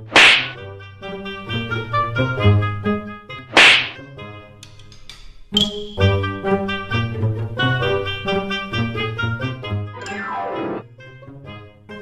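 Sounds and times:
comic slap sound effect: 0:00.0 - 0:00.6, 0:03.5 - 0:04.0
instrumental tune of held notes: 0:09.9 - 0:11.0.

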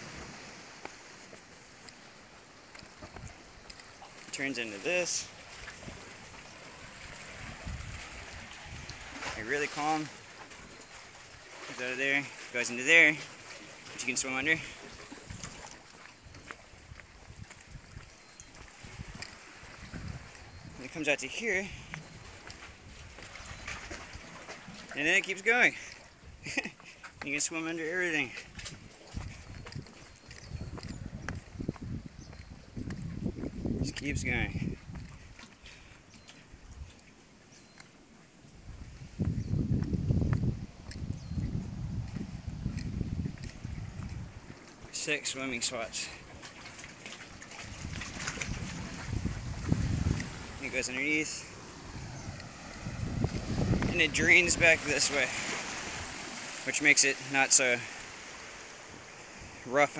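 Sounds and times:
sea water surging and sloshing: 0:00.0 - 0:59.9
wind rumble on microphone: 0:06.9 - 0:09.4, 0:15.2 - 0:20.8, 0:28.5 - 0:35.5, 0:38.5 - 0:44.8, 0:47.5 - 0:50.8, 0:51.5 - 0:56.3
seawater surging through rocks: 0:44.9 - 0:59.9.

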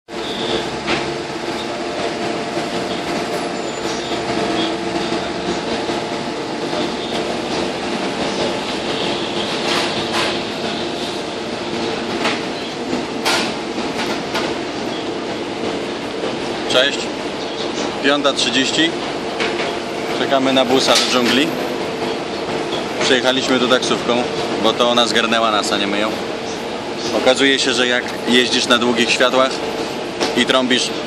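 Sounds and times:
bus and van engines humming: 0:00.1 - 0:16.7.

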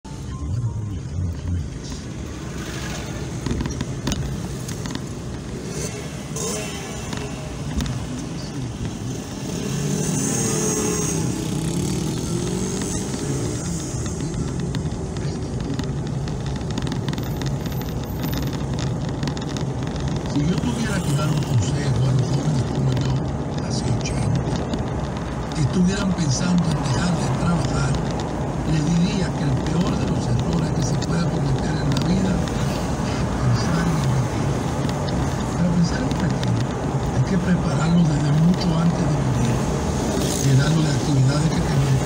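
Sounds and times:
car engine and road noise: 0:00.0 - 0:42.0.

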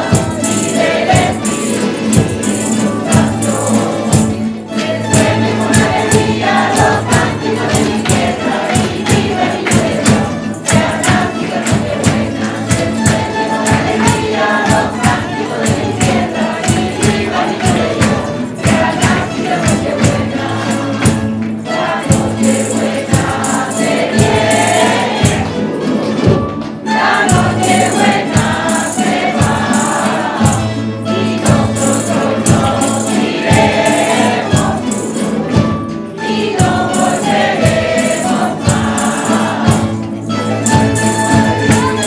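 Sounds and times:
choir singing in unison: 0:00.0 - 0:42.0
hand percussion beat: 0:00.0 - 0:42.0
strummed guitars and lutes: 0:00.0 - 0:42.0.

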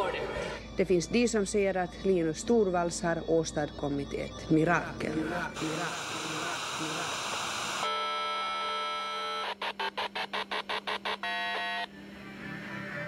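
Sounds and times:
rapid electronic beeps: 0:03.9 - 0:07.9, 0:09.2 - 0:11.9
television static hiss: 0:05.1 - 0:11.9
buzzing electronic chord: 0:05.1 - 0:13.0.

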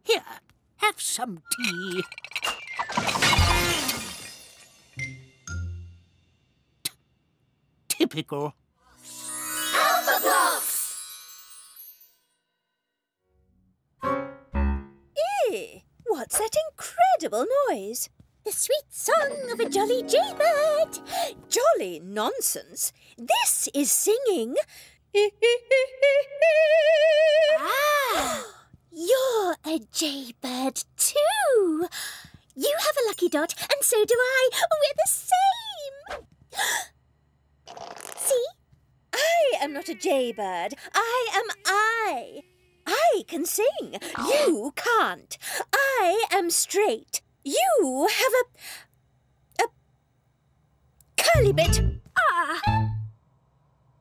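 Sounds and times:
china teacups crashing: 0:01.6 - 0:04.8
cartoon character singing playfully: 0:51.3 - 0:52.0.

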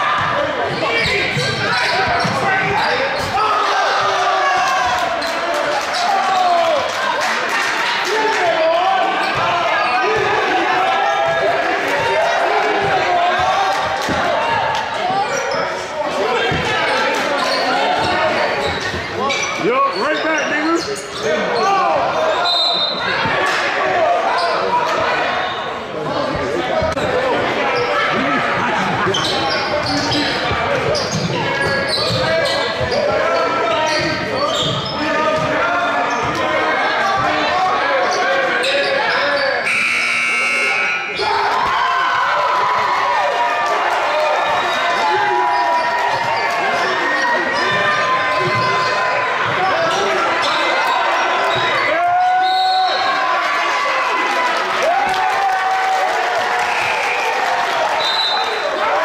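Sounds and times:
shouts and chatter: 0:00.0 - 0:59.0
buzzer: 0:39.6 - 0:41.2.

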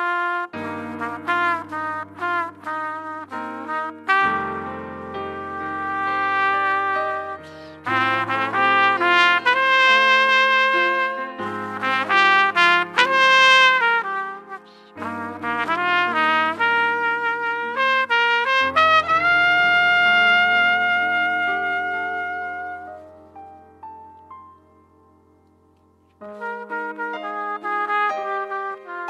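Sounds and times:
trumpet melody: 0:00.0 - 0:23.6, 0:26.2 - 0:29.0
piano accompaniment: 0:00.0 - 0:29.0.

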